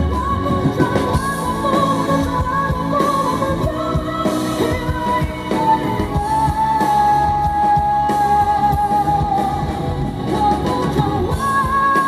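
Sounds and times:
drum kit beating: 0.0s - 12.0s
electric guitar: 0.0s - 12.0s
woman singing into microphone: 0.0s - 12.0s.

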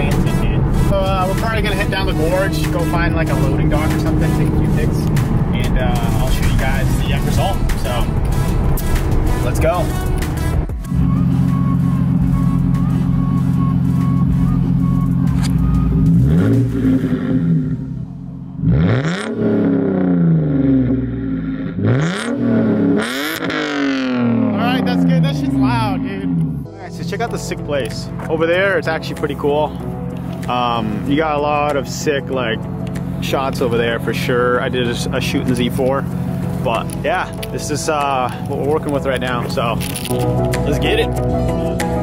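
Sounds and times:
road noise inside moving car: 0.0s - 19.3s
car engine revving: 0.0s - 42.0s.

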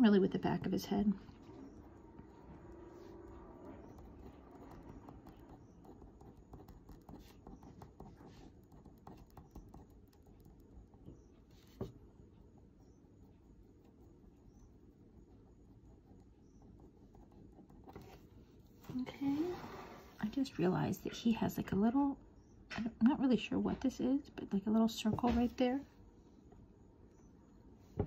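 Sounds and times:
pen tapping and scratching paper: 0.1s - 18.3s.

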